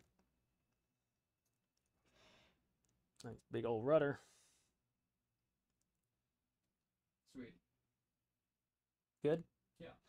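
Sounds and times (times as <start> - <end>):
faint exhaled breath: 2.0 - 2.6.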